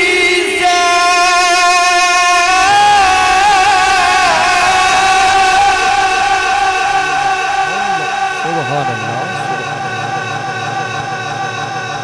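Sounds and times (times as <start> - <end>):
man reciting melodically: 0.0 - 10.2.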